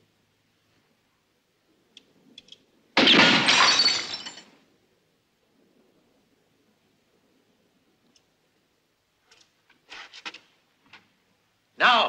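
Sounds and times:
faint clicks: 1.9s - 2.7s, 8.0s - 8.3s, 9.3s - 9.8s
glass bottle shattering: 3.0s - 4.6s.

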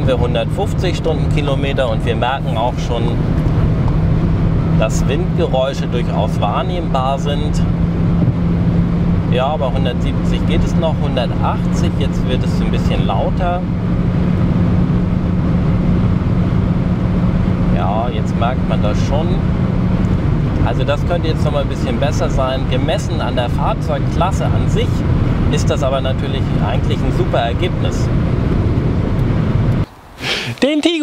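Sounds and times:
car cabin wind and road noise: 0.0s - 31.0s.

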